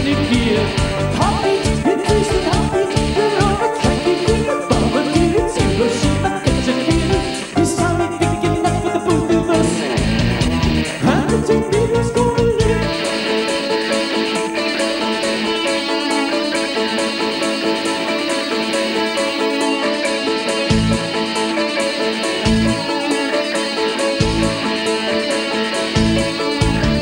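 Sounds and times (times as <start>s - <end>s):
low bass hits: 0.0s - 7.2s, 8.3s - 13.0s
electric guitar sustained notes: 0.0s - 27.0s
rock band playing: 0.0s - 27.0s
steady ticking beat: 0.0s - 27.0s.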